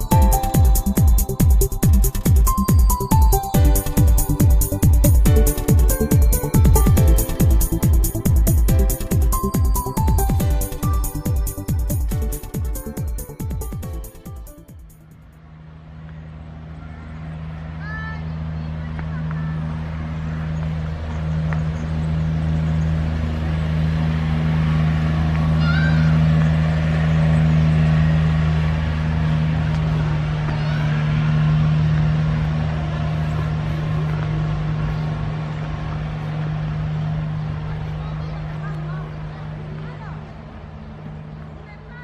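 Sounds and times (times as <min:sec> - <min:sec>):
low engine-like hum: 0:00.0 - 0:42.0.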